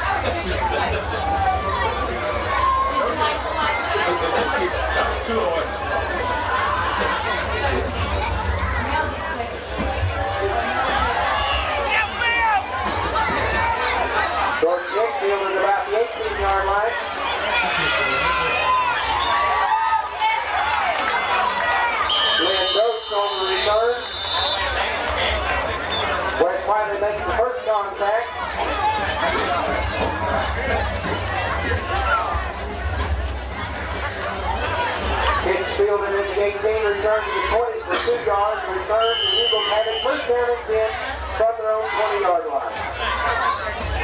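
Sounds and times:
crowd chatter and calling out: 0.0s - 44.0s.

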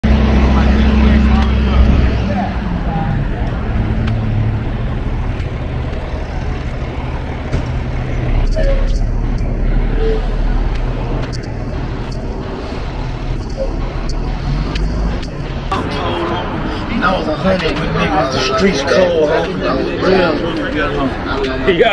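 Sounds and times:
indistinct voices: 0.0s - 21.9s
street traffic noise: 0.0s - 21.9s
vehicle engine rumble: 0.0s - 21.9s.

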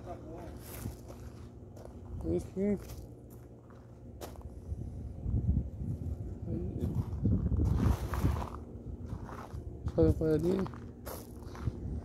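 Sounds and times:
footsteps crunching on gravel: 0.0s - 4.6s, 6.8s - 12.0s
microphone rumble and rubbing: 4.5s - 10.8s.

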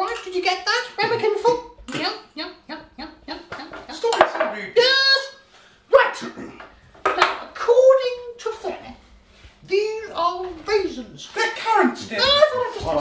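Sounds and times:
voices talking and exclaiming: 9.6s - 13.0s.

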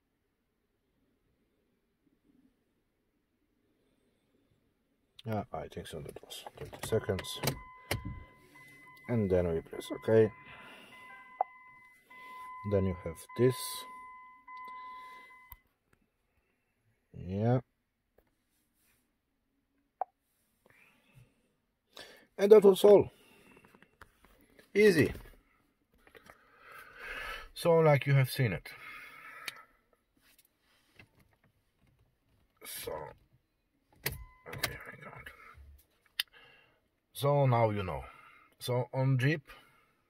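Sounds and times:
steady electronic beep: 7.2s - 15.6s.

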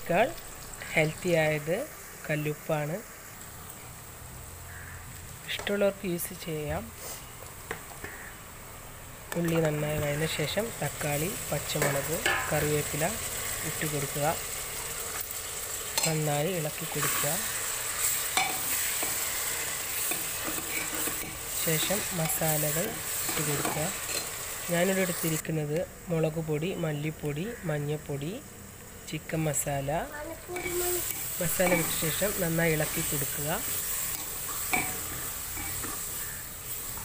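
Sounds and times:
vegetables sizzling in hot oil: 0.0s - 37.0s.

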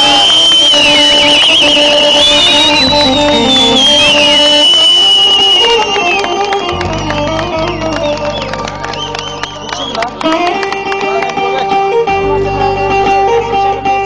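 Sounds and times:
folk band keyboard and guitar: 0.0s - 14.0s.

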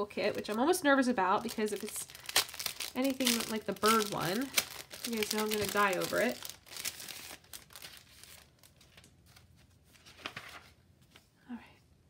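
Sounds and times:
paper and plastic rustling: 0.0s - 11.3s.

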